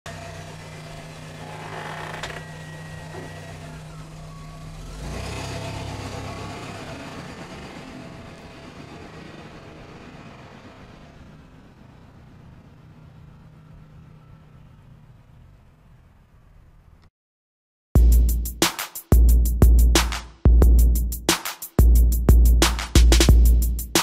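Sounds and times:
car engine humming: 0.1 - 16.2
car driving past: 0.1 - 16.5.

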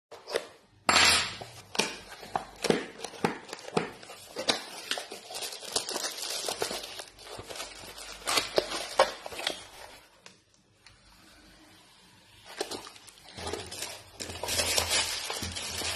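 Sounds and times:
plastic wrapping crinkling: 2.2 - 10.4, 12.4 - 15.9.

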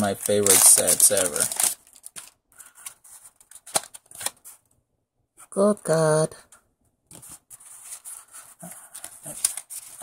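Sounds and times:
trading cards rustling and sliding: 0.1 - 4.6, 7.1 - 10.0.

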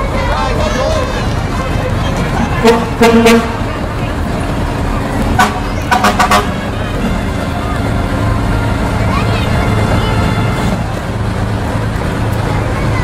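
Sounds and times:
truck engine rumble: 0.0 - 13.0
fire engine horn toots: 2.4 - 3.8, 5.2 - 11.0.

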